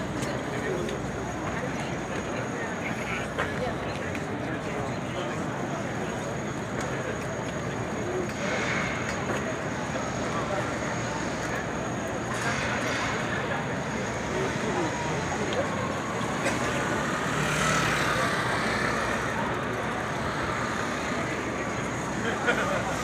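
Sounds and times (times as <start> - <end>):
chatter of many people: 0.0 - 23.0
traffic noise: 0.0 - 23.0.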